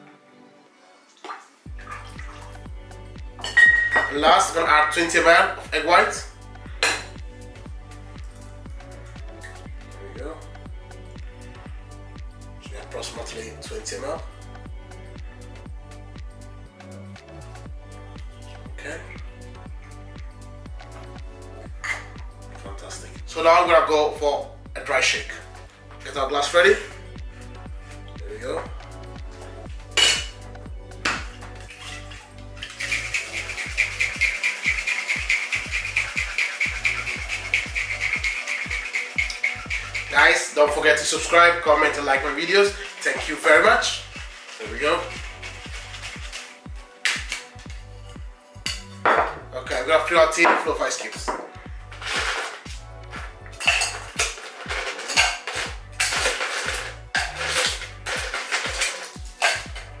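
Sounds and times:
background music with low beat: 1.6s - 60.0s
electronic music: 28.2s - 49.5s
shaker tin knocking on glass: 31.0s - 41.4s, 42.1s - 47.4s, 53.6s - 59.9s
cocktail shaker shaking: 31.6s - 47.8s, 51.9s - 52.8s, 53.6s - 59.9s.

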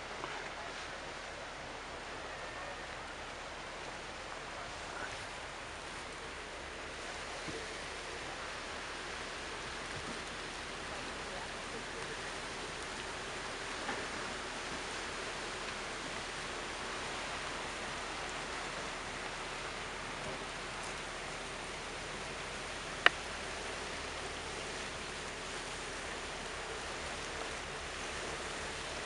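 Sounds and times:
water rushing and splashing: 0.0s - 29.0s.

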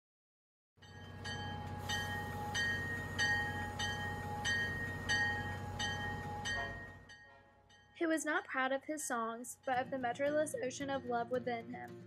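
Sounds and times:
bell-like tone struck: 0.8s - 8.0s
steady low hum: 0.9s - 7.2s.

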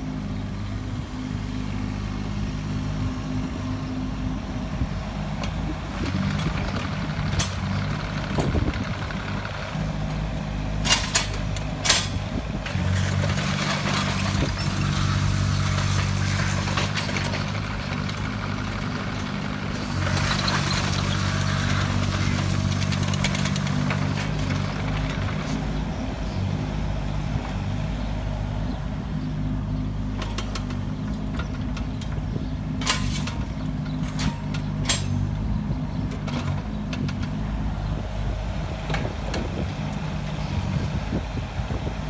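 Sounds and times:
excavator diesel engine running: 0.0s - 42.0s
sharp metallic clanks: 32.8s - 35.3s.

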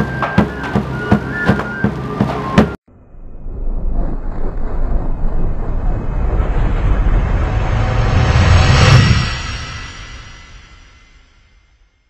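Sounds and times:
whoosh with deep rumble: 2.4s - 12.0s.

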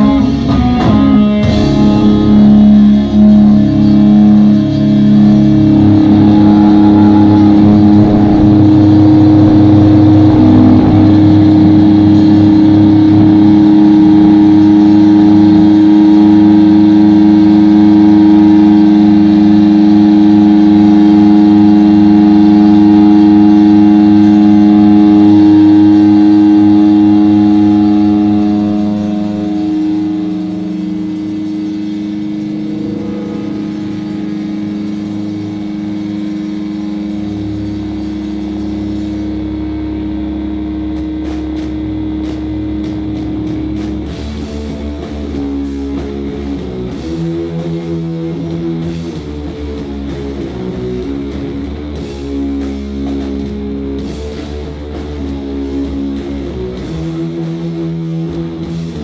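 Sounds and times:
distorted guitars droning chord: 0.0s - 59.0s.

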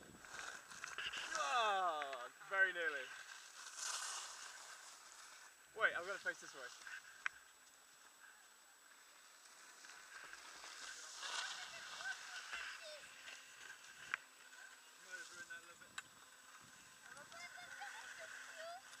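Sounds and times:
skis sliding on snow: 0.1s - 8.2s, 8.8s - 19.0s.

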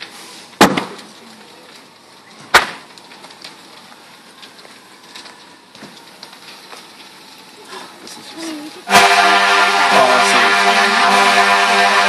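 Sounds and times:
loud sharp crack: 0.0s - 1.1s, 2.5s - 3.4s
faint fire crackles: 0.0s - 12.0s
low fire background noise: 0.0s - 12.0s.

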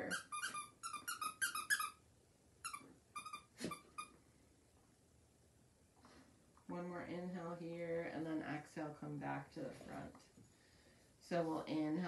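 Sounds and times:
squeaky toy squeaks: 0.0s - 2.0s, 2.6s - 4.2s.

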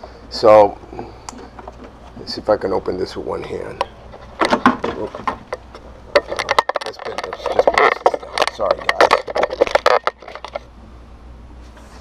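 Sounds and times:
plastic clicks and knocks: 4.4s - 10.6s.

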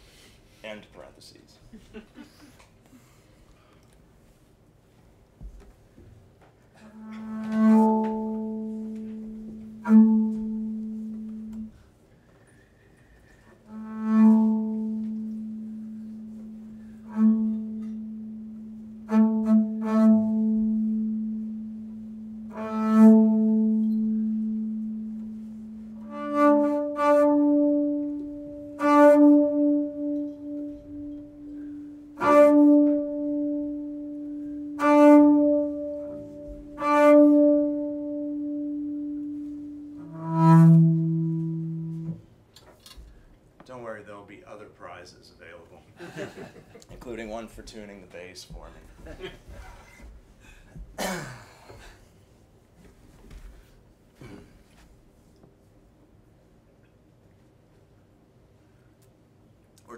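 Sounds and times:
bowed double bass: 6.8s - 11.9s, 13.6s - 42.3s.

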